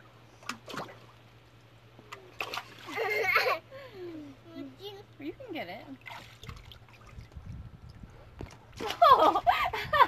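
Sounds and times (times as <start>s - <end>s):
pool water sloshing: 0.0s - 3.6s, 5.6s - 9.6s
small splashes: 0.4s - 1.2s, 2.1s - 3.5s, 5.9s - 9.5s.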